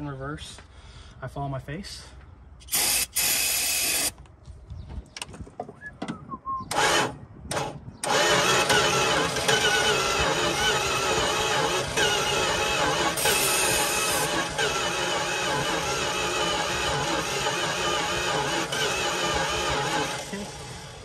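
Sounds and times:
starter cranking engine: 2.6s - 4.2s, 6.7s - 21.0s.

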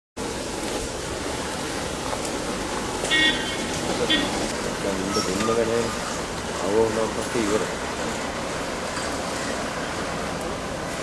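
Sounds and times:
road traffic passing: 0.2s - 11.0s
car horn toot: 3.0s - 4.4s.

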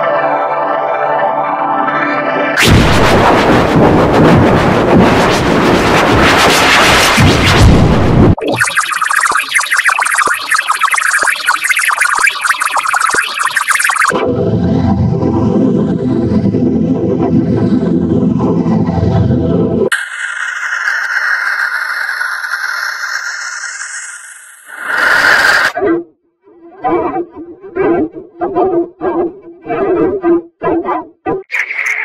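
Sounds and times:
distorted digital crackle: 2.6s - 14.2s, 19.9s - 25.7s, 31.5s - 32.0s
distorted buzzing low drone: 2.6s - 19.9s.

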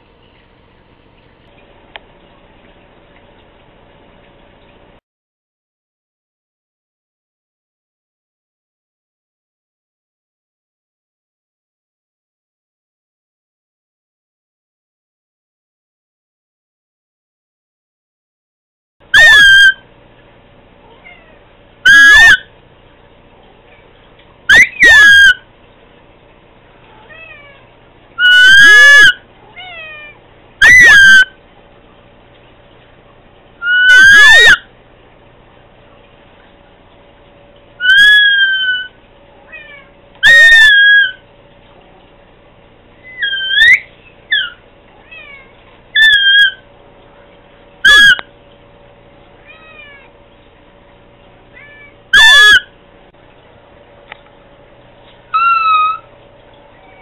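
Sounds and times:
cat meowing: 20.9s - 21.4s, 26.9s - 27.6s, 28.3s - 31.0s, 39.5s - 41.2s, 44.4s - 46.6s, 49.4s - 50.1s, 51.5s - 52.6s, 56.7s - 57.0s.

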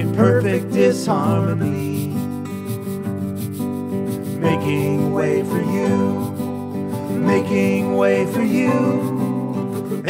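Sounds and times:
acoustic guitar: 0.0s - 10.0s
rhythmic high percussion: 0.0s - 10.0s.

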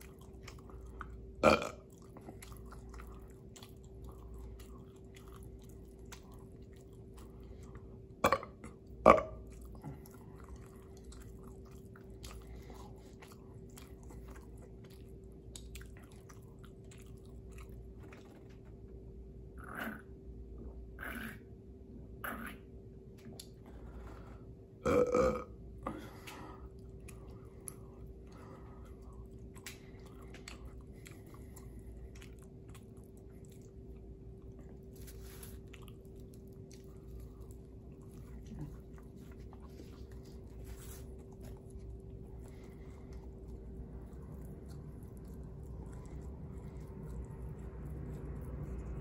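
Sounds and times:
gulping: 0.0s - 3.6s
wet chewing: 0.0s - 18.6s, 26.0s - 49.0s
faint steady hum: 0.0s - 49.0s
man burping loudly: 1.4s - 1.8s, 24.8s - 25.5s
soft mouth clicks: 23.2s - 23.6s.

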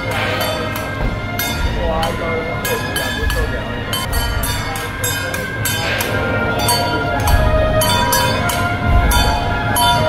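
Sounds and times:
cymbal or gong crashes: 0.0s - 10.0s
drum beats: 0.0s - 10.0s
sustained horn-like tones: 0.0s - 10.0s.

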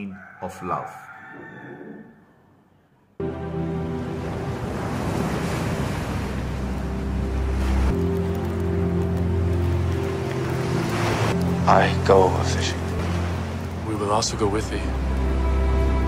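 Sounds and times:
music of low chords: 3.2s - 16.0s
waves breaking on shore: 3.8s - 15.1s.

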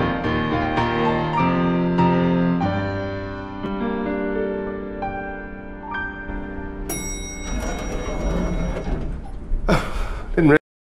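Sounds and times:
held piano chord: 0.0s - 9.6s.

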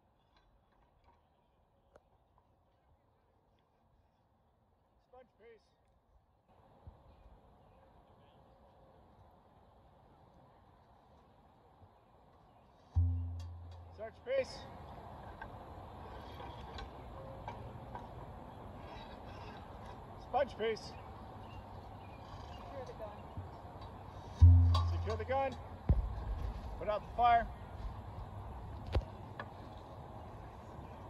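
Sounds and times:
outdoor background: 0.0s - 31.0s.

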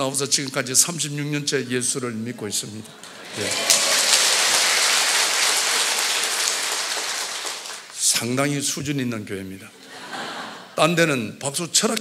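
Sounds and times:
congregation applauding: 3.0s - 8.2s.

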